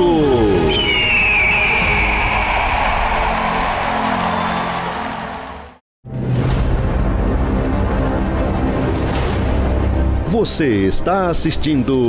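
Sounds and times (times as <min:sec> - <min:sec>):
tv theme music: 0:00.0 - 0:12.0.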